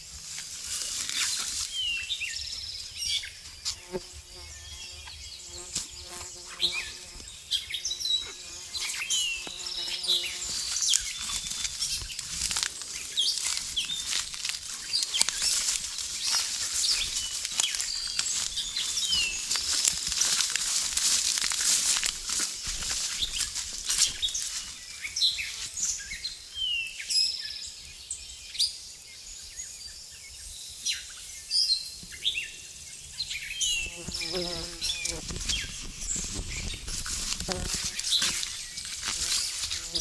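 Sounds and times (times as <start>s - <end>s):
footsteps through wet undergrowth: 0.0s - 3.8s, 5.7s - 26.2s, 33.7s - 40.0s
songbirds chirping and singing: 0.7s - 40.0s.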